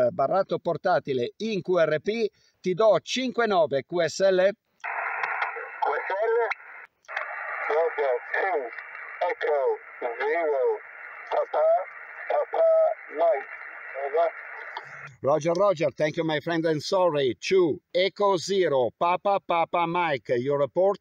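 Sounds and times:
radio band noise hiss: 4.1s - 21.0s
narrow-band radio speech: 4.8s - 21.0s.

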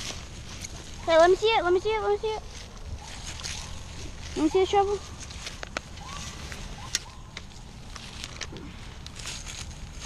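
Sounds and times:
hand scraping in dirt and leaves: 0.0s - 10.0s
crackling clicks: 5.2s - 9.7s.

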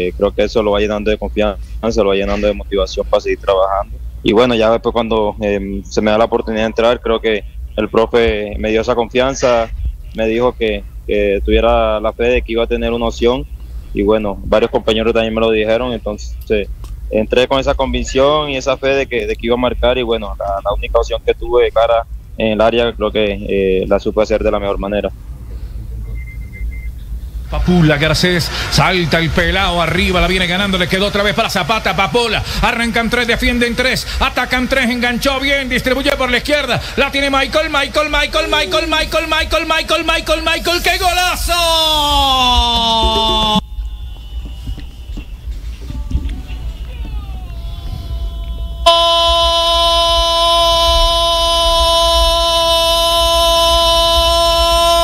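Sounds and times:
steady low hum: 0.0s - 55.0s
faint high broken beeping: 26.0s - 27.5s
loud steady horn blast: 46.1s - 55.0s.

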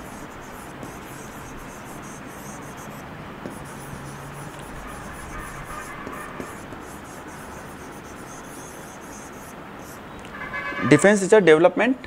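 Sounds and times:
pen scratching on glass screen: 0.0s - 10.0s
pen tap on screen: 3.4s - 3.8s, 4.4s - 7.0s.

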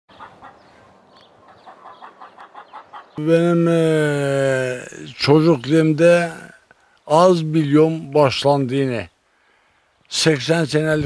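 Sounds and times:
chicken clucking: 0.1s - 3.2s.

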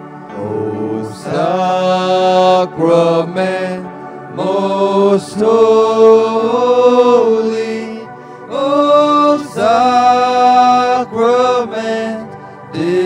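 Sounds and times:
slow hymn singing: 0.0s - 13.0s.

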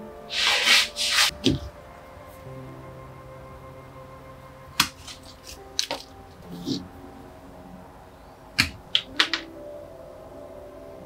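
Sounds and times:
soft music with held notes: 0.0s - 11.0s.

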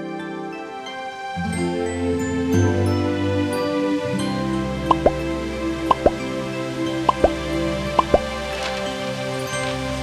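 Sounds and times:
soft sustained background music: 0.0s - 10.0s
rising plops like water drops: 4.9s - 5.2s, 5.9s - 6.2s, 7.1s - 7.4s, 8.0s - 8.3s.

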